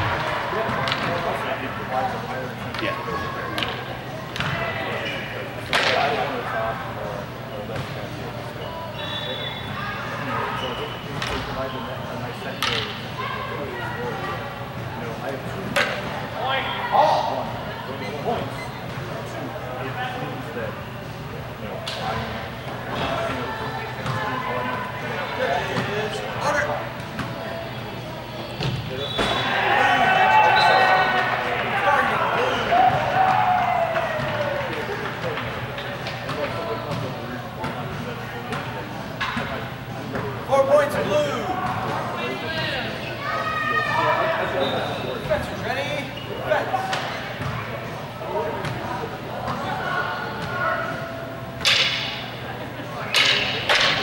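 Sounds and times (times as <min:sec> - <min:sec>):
voices chattering: 0:00.0 - 0:54.0.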